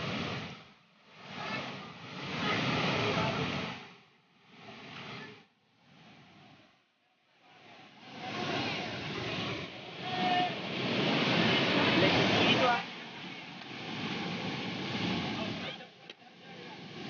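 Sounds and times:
waterfall rushing over rock: 0.0 - 3.9, 7.6 - 17.0.

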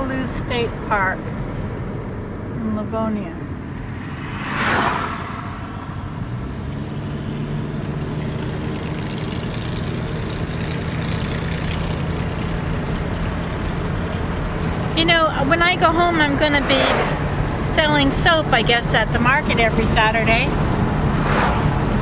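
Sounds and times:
tyre and engine road noise: 0.0 - 22.0
low engine drone: 3.3 - 17.6
car whooshing past: 3.4 - 12.8, 16.4 - 17.6, 20.5 - 22.0.

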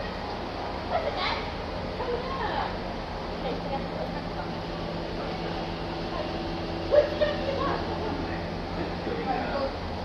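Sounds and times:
diesel train idling hum: 0.0 - 10.0.

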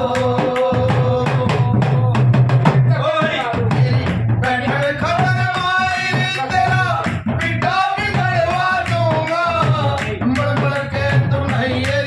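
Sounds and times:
drums in quick folk rhythm: 0.0 - 12.0.

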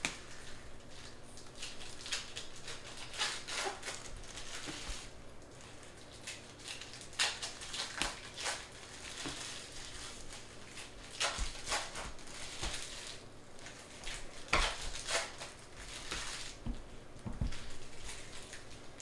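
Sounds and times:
card packaging rustling and crinkling: 0.0 - 19.0.

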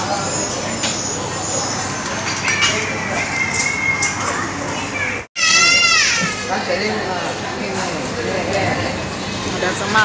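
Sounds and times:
restaurant chatter: 0.0 - 10.0
child shrieking: 5.0 - 6.5.

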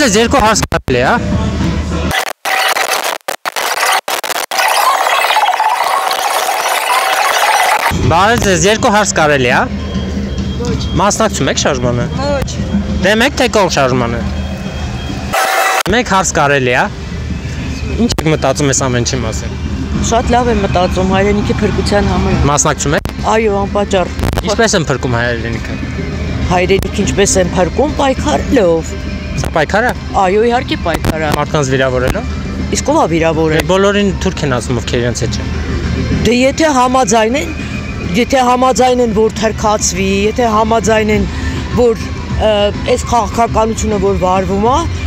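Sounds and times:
people talking: 0.0 - 2.1, 8.0 - 9.7, 10.6 - 14.2, 15.9 - 16.9, 17.6 - 25.8, 26.5 - 35.4, 36.2 - 44.9
street traffic rumble: 0.0 - 2.1, 7.8 - 45.0.

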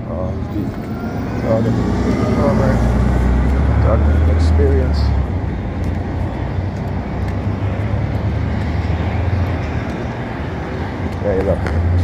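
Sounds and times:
bus engine rumble: 0.0 - 12.0
street traffic: 0.0 - 12.0.

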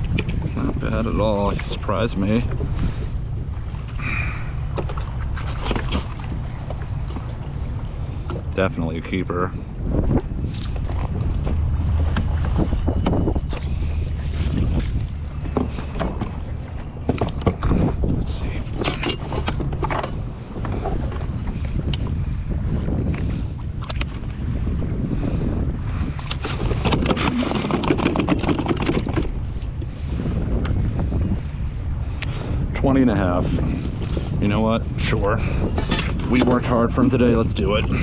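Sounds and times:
water sloshing against kayak hull: 0.0 - 38.0
wind buffeting microphone: 0.0 - 38.0
clicks knocks and rattles of gear: 14.4 - 22.1, 26.2 - 29.7.

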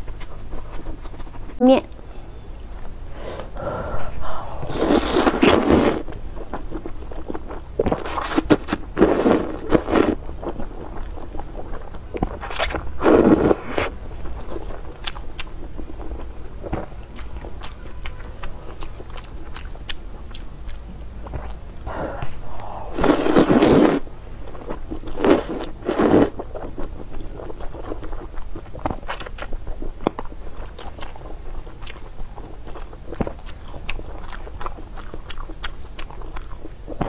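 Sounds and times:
loud slurping of noodles: 4.2 - 6.0, 21.9 - 24.0.

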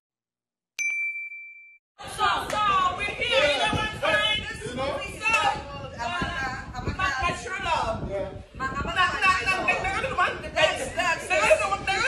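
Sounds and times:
bell-like chime: 0.8 - 1.8.

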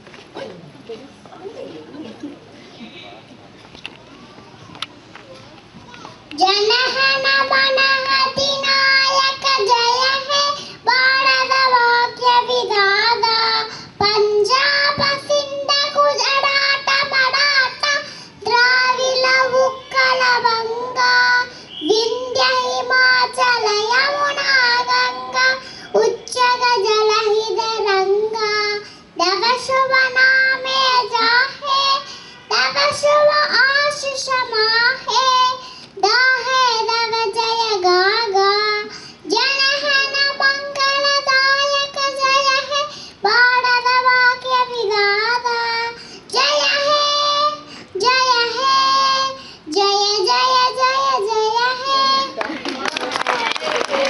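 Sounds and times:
child singing into a microphone: 5.4 - 52.5.

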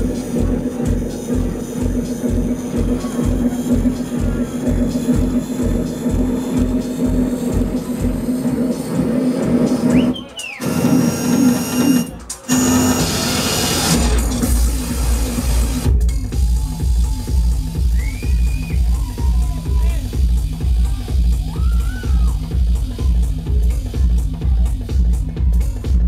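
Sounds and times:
kick drum: 0.0 - 10.0, 14.0 - 26.0
techno music: 0.0 - 26.0.

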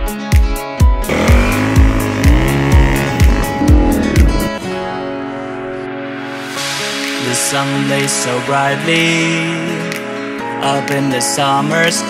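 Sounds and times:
motorcycle engine revving: 1.1 - 4.6.

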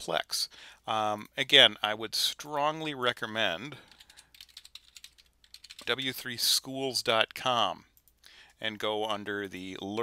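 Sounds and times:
typing on computer keyboard: 3.9 - 5.9.

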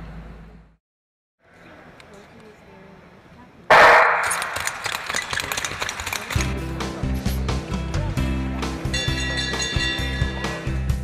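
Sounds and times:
loud bang ringing in a hall: 3.7 - 5.1
sharp clicks: 3.7 - 6.6
background music with low notes: 6.5 - 11.0.

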